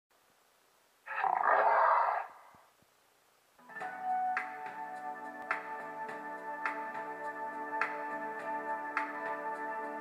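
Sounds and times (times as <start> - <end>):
lion roaring: 1.1 - 2.5.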